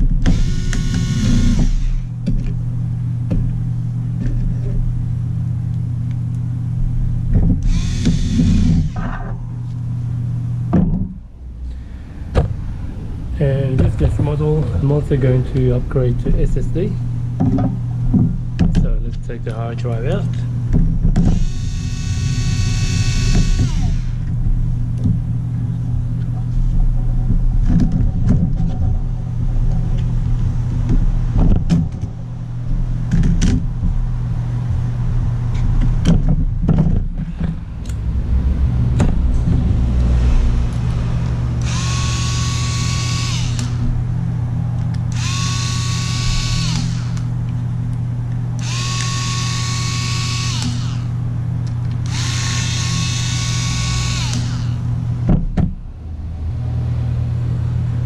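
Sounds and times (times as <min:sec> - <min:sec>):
steady low hum: 0:00.0 - 0:58.0
electric screwdriver whining: 0:00.2 - 0:02.1, 0:07.6 - 0:09.3, 0:21.2 - 0:24.2, 0:41.6 - 0:43.9, 0:45.0 - 0:47.3, 0:48.6 - 0:51.1, 0:51.9 - 0:54.8.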